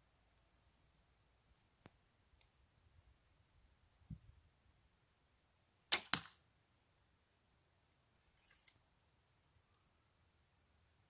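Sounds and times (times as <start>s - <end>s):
sharp cracks: 5.9s - 6.4s.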